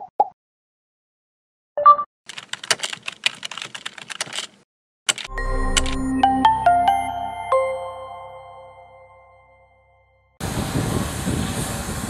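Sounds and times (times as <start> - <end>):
computer keyboard typing: 2.3 - 6.1.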